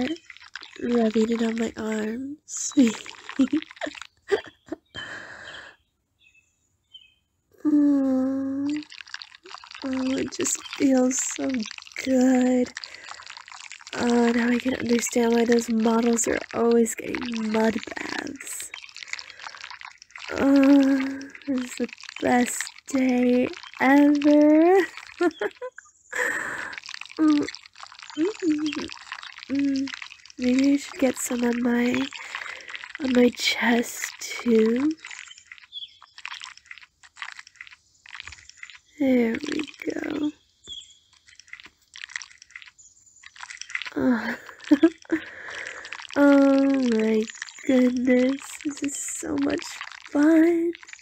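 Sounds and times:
wet mud squelching: 0.0 - 5.6, 7.7 - 51.0
faint high bird chirps: 2.8 - 10.8, 34.7 - 44.0
woman giggling: 4.3 - 4.9
breathy noise: 11.6 - 14.6, 17.1 - 22.7, 26.2 - 30.9, 31.5 - 38.9, 43.4 - 50.1
woman making sounds of pleasure: 43.9 - 46.2.

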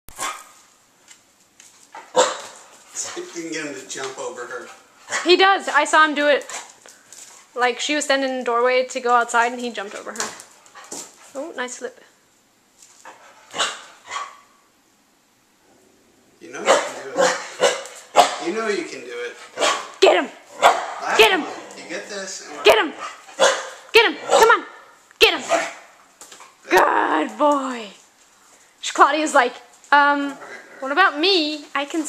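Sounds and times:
dog barking: 0.1 - 0.6, 2.0 - 3.2, 13.5 - 14.6, 16.6 - 18.6, 19.6 - 21.6, 22.6 - 25.9.

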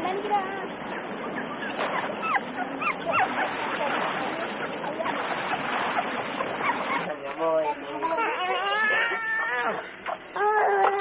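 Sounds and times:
puppies whimpering and yelping: 0.8 - 7.2, 8.3 - 11.0.

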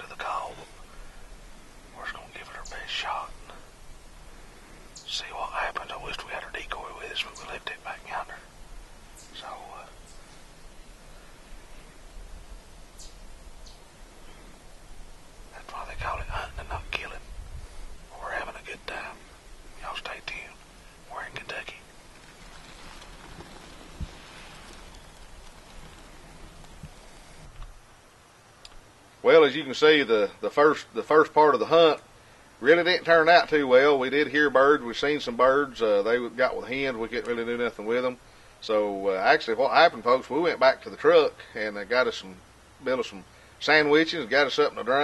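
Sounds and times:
man whispering: 0.0 - 1.0, 1.8 - 3.7, 5.0 - 8.6, 9.3 - 10.0, 15.5 - 17.4, 18.1 - 22.0, 32.6 - 42.4.

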